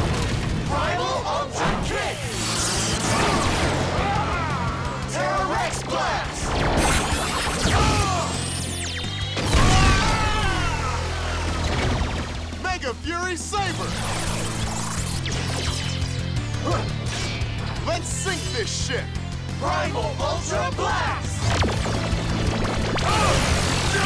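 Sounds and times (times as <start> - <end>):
action soundtrack music with bass: 0.0 - 24.0
shouted or sung voices: 0.6 - 2.4, 3.0 - 6.6, 7.6 - 8.5, 9.5 - 11.9, 19.6 - 21.4, 23.0 - 24.0.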